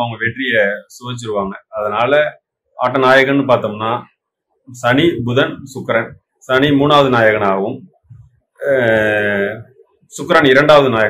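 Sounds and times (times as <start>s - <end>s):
man talking: 0.0s - 4.1s, 4.7s - 7.9s, 8.6s - 11.0s.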